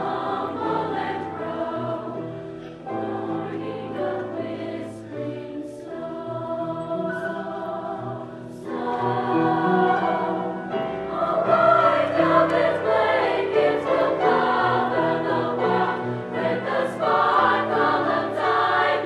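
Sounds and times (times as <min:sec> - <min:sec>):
women's choir singing chords: 0:00.0 - 0:19.0.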